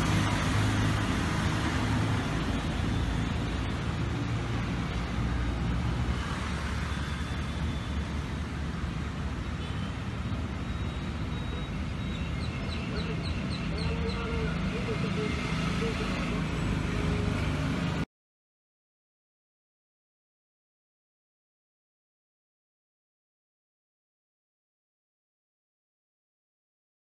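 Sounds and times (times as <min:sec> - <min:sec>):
low traffic rumble: 0:00.0 - 0:18.1
bird chirping: 0:10.7 - 0:16.2.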